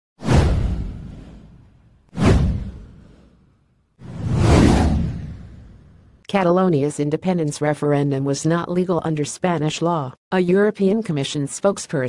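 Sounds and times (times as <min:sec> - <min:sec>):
whoosh sound effects: 0:02.2 - 0:03.4, 0:04.0 - 0:06.1.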